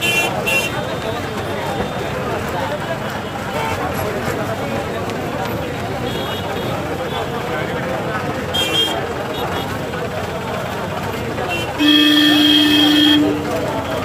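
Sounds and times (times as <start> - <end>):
vehicle horn: 0.0 - 1.1, 11.5 - 14.0
crowd hubbub: 0.0 - 14.0.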